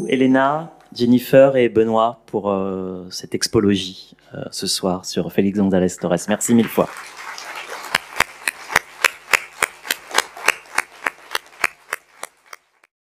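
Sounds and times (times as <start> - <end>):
audience applauding: 6.5 - 12.9
sharp rhythmic claps: 6.5 - 12.9.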